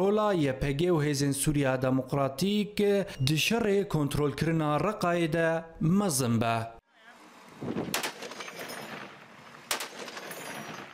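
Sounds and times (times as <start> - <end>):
outdoor field noise hiss: 7.1 - 10.2
gunshot cracks: 7.9 - 9.1, 9.7 - 10.9.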